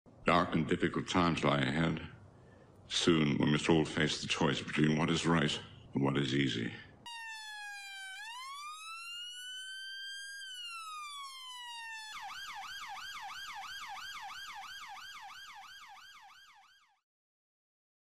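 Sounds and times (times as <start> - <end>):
police siren wail and yelp: 7.1 - 17.0.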